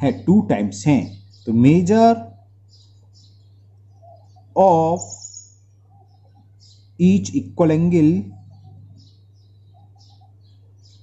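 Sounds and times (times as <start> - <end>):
small birds chirping: 0.0 - 11.0
steady low hum: 0.0 - 11.0.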